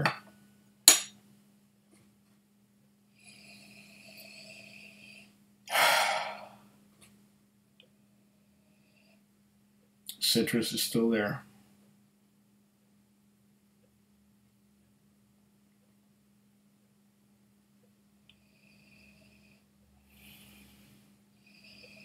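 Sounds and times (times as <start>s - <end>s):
person sipping drink: 5.7s - 6.6s
loud breathy exhale: 5.7s - 6.7s.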